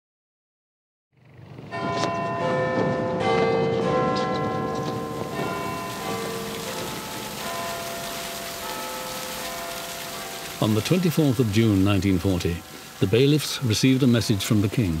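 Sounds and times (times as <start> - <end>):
bells ringing: 1.7 - 15.0
steady hiss: 5.3 - 15.0.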